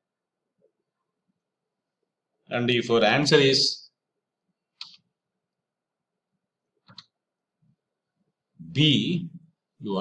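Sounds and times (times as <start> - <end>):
computer mouse clicks: 4.8 - 5.1, 6.8 - 7.2.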